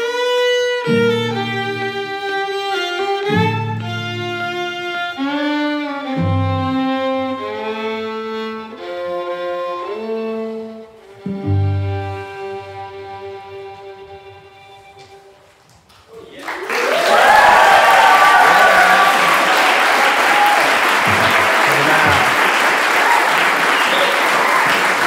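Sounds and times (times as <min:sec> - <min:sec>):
fiddles bowing chords: 0:00.0 - 0:15.4
cellos bowing chords: 0:00.0 - 0:15.6.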